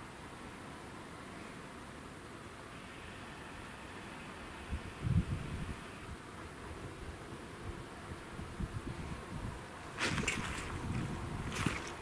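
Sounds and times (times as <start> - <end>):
tractor and baler rumbling: 9.9 - 12.0.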